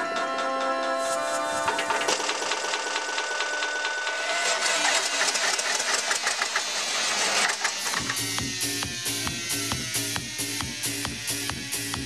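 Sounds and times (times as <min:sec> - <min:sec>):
ticking techno percussion loop: 0:07.4 - 0:12.0.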